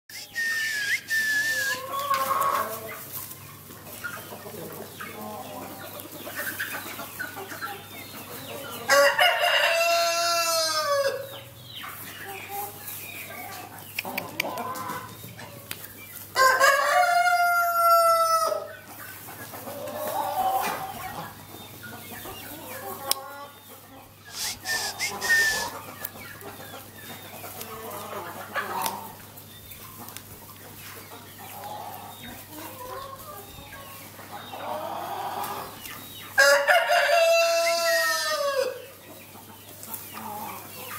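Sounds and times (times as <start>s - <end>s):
chickens clucking softly: 0.2s - 40.9s
rooster crowing: 8.9s - 11.3s, 16.4s - 18.7s, 36.4s - 38.8s.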